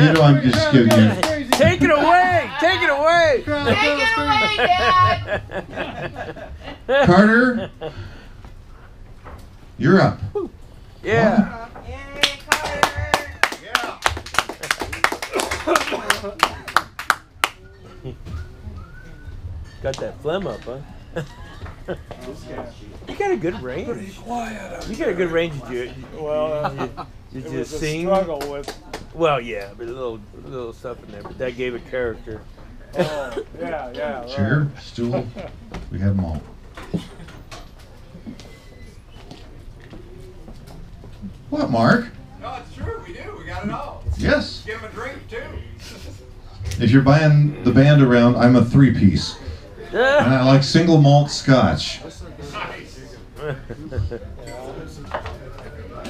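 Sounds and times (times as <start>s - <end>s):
audience clapping: 0.0s - 2.1s, 12.1s - 17.6s, 28.1s - 29.2s
people talking: 0.0s - 7.7s, 9.8s - 16.8s, 19.8s - 36.4s, 41.5s - 56.0s
murmur of distant voices: 9.8s - 56.0s.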